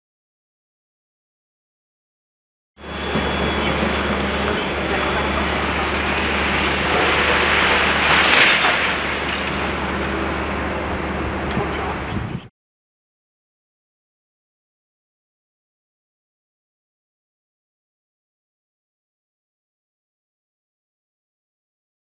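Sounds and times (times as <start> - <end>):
diesel engine running: 2.8 - 12.5
crash of falling rubble: 3.2 - 10.4
concrete grinding and crunching: 3.2 - 10.7.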